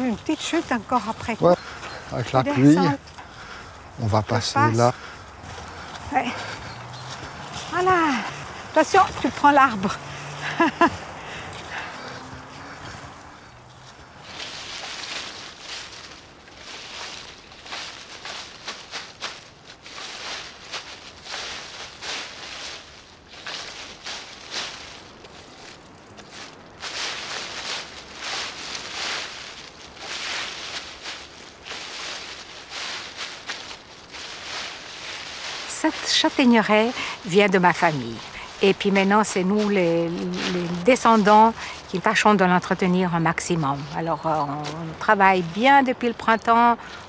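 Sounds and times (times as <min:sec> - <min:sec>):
dry leaves being swept: 0:00.0 - 0:03.1, 0:04.0 - 0:47.0.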